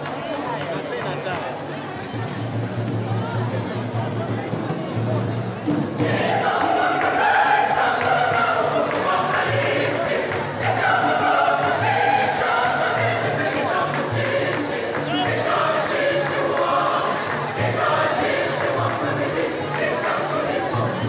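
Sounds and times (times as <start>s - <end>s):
mixed choir singing: 5.6s - 21.0s.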